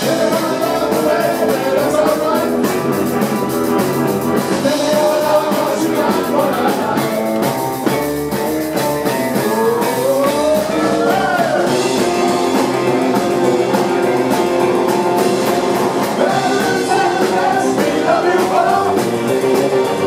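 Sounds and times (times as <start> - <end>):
person singing: 0.0 - 2.9, 4.6 - 7.5, 9.1 - 13.8, 16.0 - 20.0
live rock band playing: 0.0 - 20.0.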